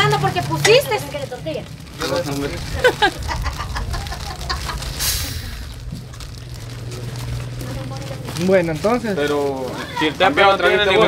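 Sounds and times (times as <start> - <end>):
low steady hum: 0.0 - 9.0
man laughing: 2.6 - 5.0
brief hiss: 4.9 - 5.7.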